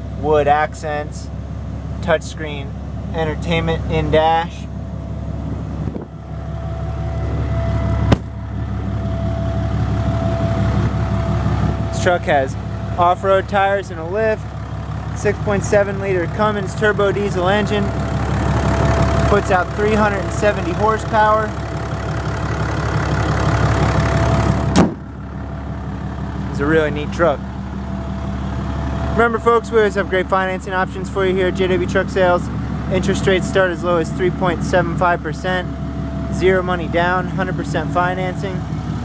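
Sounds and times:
diesel engine idling: 0.0s - 39.0s
thin steady whine: 2.0s - 14.4s
car hood slammed shut: 24.7s - 25.1s.

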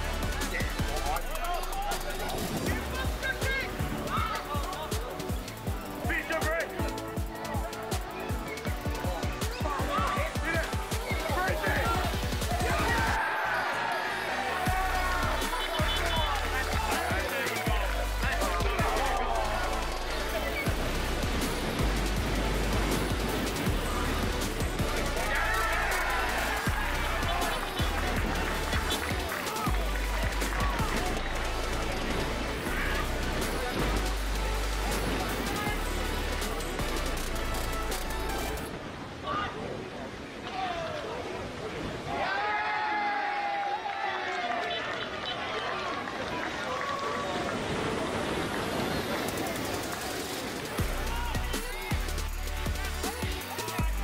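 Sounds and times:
music with deep bass line: 0.0s - 13.2s, 14.7s - 38.7s, 50.8s - 54.0s.

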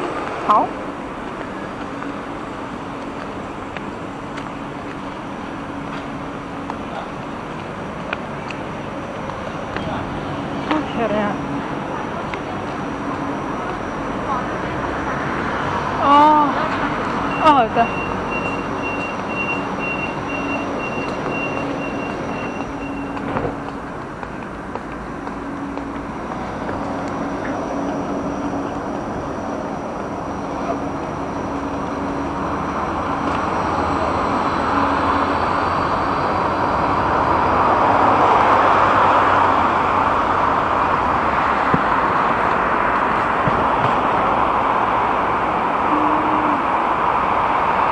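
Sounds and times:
street traffic noise: 0.0s - 47.9s
vehicle approaching: 0.0s - 47.9s
high beeping tone: 17.3s - 23.2s
person calling out: 45.9s - 46.7s.

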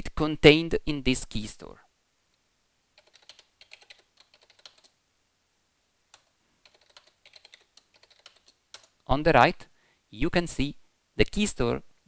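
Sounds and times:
faint keyboard typing: 2.9s - 5.0s, 6.1s - 9.1s.

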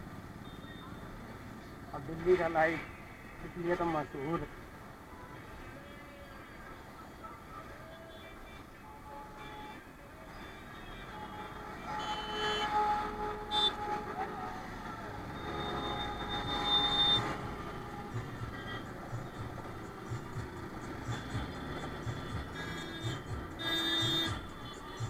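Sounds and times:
road traffic engine noise: 0.0s - 25.0s
background music: 14.6s - 25.0s.

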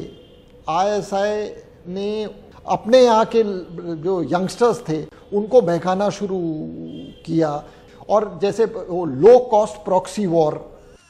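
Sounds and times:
man speaking: 0.0s - 10.8s.

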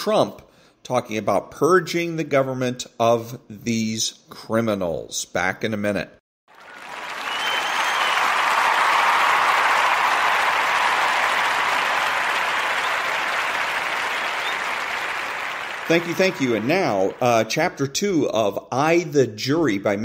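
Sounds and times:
crowd applauding: 6.5s - 17.8s.

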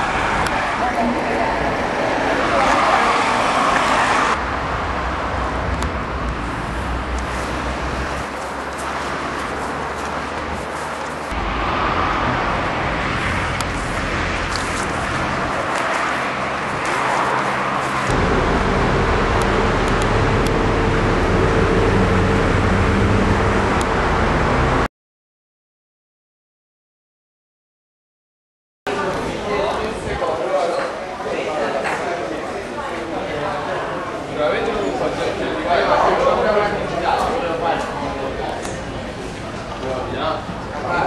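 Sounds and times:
engine hum: 0.0s - 24.9s
passing cars and buses: 0.0s - 24.9s, 28.9s - 41.0s.

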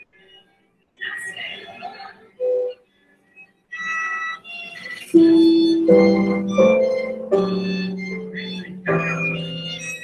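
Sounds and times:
violin playing: 3.8s - 10.0s.

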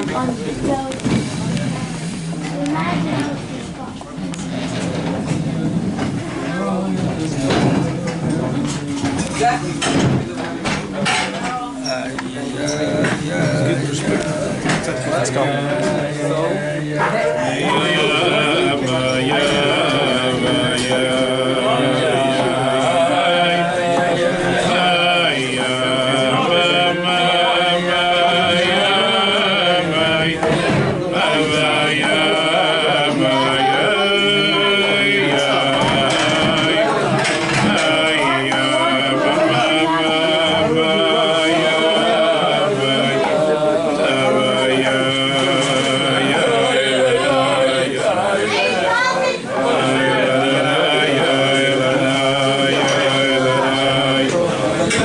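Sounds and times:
men singing wordless melody: 12.0s - 55.0s.

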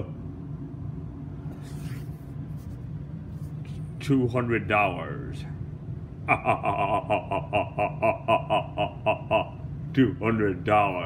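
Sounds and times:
man laughing: 6.2s - 9.7s.

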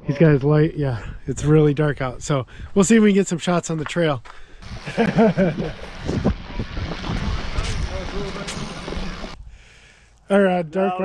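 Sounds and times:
person laughing: 4.6s - 6.3s.

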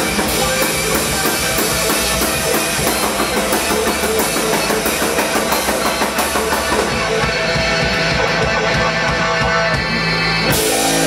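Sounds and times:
drum kit with cymbals: 0.0s - 11.0s
electric guitar: 0.0s - 11.0s
keyboard: 0.0s - 11.0s.

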